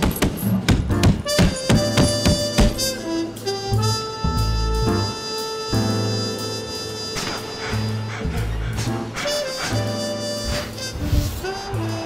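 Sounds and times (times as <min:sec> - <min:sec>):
background music with sharp beats: 0:00.0 - 0:06.2, 0:07.0 - 0:12.0.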